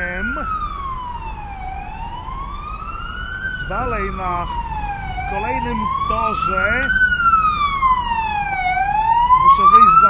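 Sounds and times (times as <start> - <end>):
emergency vehicle siren wailing: 0.0 - 10.0.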